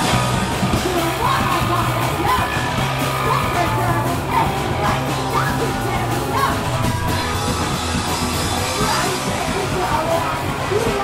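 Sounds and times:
punk band playing: 0.0s - 11.0s
yelled vocal: 0.0s - 11.0s.

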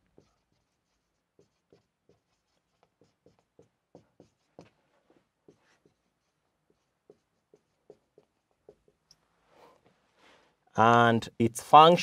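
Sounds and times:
marker writing on whiteboard: 0.0s - 10.0s.

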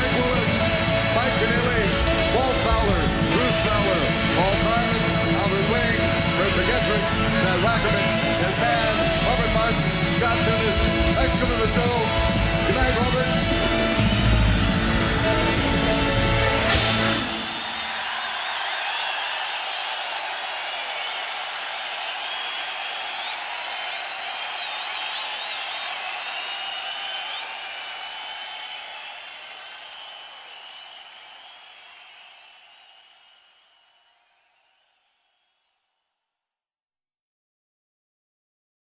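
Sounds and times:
audience applauding and cheering: 0.0s - 35.4s
whistles from crowd: 12.8s - 15.2s, 16.7s - 35.9s.

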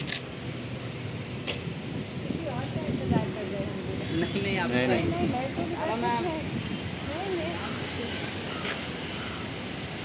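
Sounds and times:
camera shutter clicks: 0.0s - 0.3s
street background noise: 0.0s - 10.0s.

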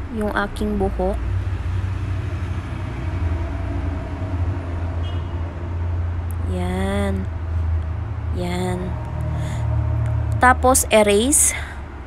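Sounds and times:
low rumble of background noise: 0.0s - 12.0s.

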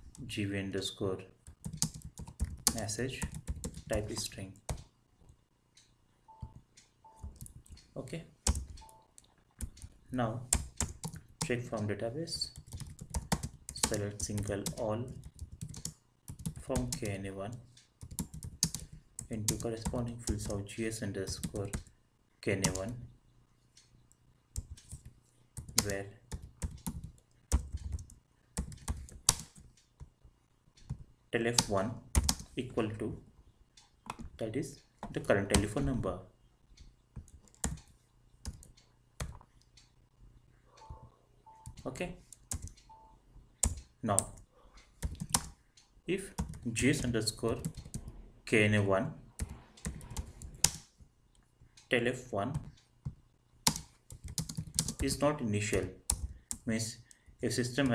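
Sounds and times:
computer keyboard keystrokes: 1.4s - 4.9s, 8.4s - 9.0s, 9.6s - 11.2s, 12.4s - 17.2s, 18.0s - 20.6s, 21.3s - 21.9s, 24.6s - 29.9s, 31.6s - 32.5s, 37.2s - 39.4s, 41.6s - 43.0s, 43.6s - 44.4s, 45.0s - 45.6s, 46.4s - 48.2s, 49.4s - 50.9s, 52.5s - 56.6s.

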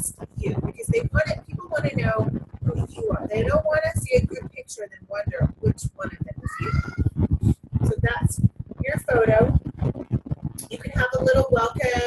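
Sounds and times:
woman's creaky vocal sounds: 6.0s - 8.2s.

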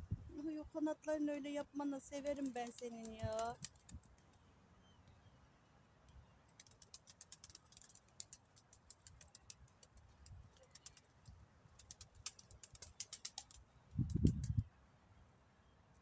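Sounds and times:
pigeons pecking grain: 6.6s - 13.6s.

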